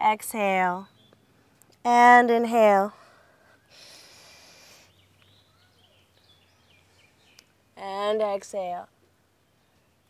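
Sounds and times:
breath in through nose: 3.3 - 4.9.

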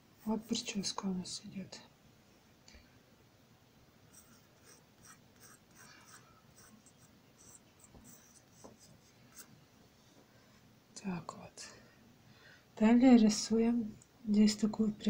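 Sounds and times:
pencil scratching on paper: 4.1 - 9.5.

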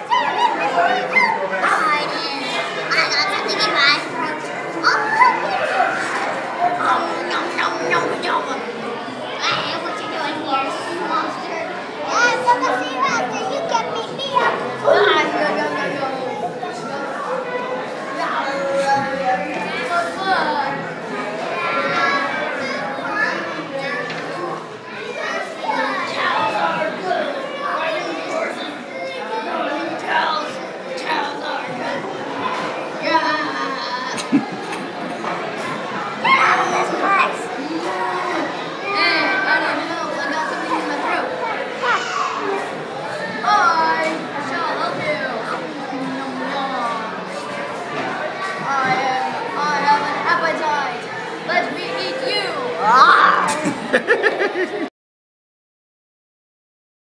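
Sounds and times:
child speaking: 0.0 - 6.0, 6.8 - 8.6, 9.3 - 16.9, 36.2 - 42.6, 48.6 - 53.6
children talking and calling out: 0.0 - 54.9.

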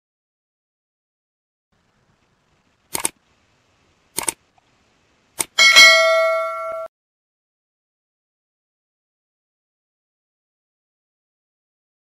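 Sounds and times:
double clicks: 2.9 - 3.2, 4.2 - 4.4, 5.4 - 5.6
bright bell ding: 5.6 - 6.9.

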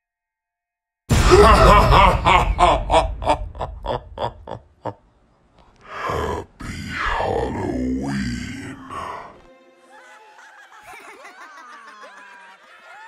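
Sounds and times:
man laughing spookily: 1.1 - 5.0, 5.9 - 13.0.

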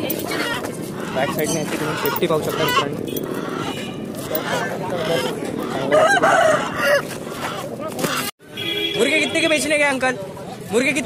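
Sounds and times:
rooster crowing: 5.8 - 7.1.

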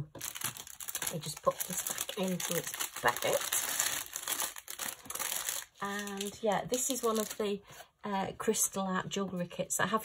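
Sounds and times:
plastic bag crinkling: 0.0 - 7.6.

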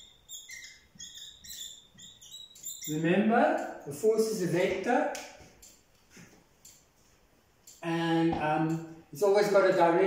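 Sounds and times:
marker squeaking on whiteboard: 0.0 - 3.8.

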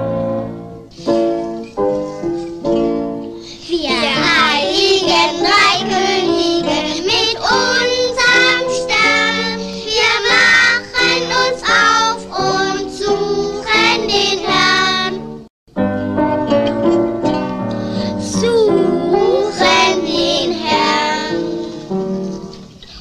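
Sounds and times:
piano chords: 0.0 - 22.8
child singing: 3.5 - 15.2, 18.2 - 21.6.

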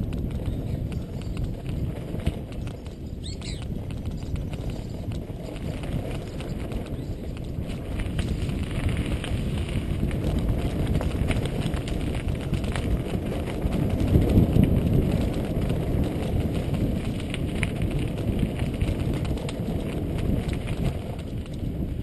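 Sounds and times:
bike rattling over bumps: 0.0 - 22.0
wind rushing on microphone: 0.0 - 22.0.

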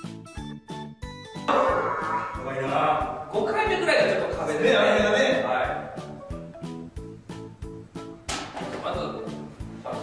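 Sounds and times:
room noise with voices: 1.5 - 6.0.

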